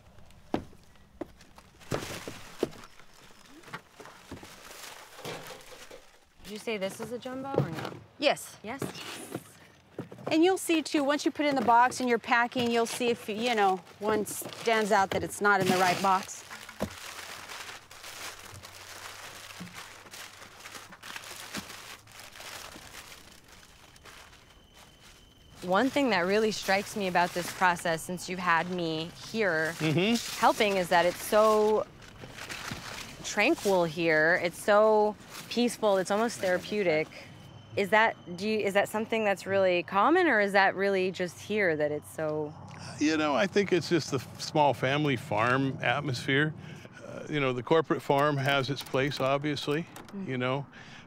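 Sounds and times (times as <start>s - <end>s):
crinkling and rustling of boxes: 0.1s - 8.1s, 8.7s - 37.2s.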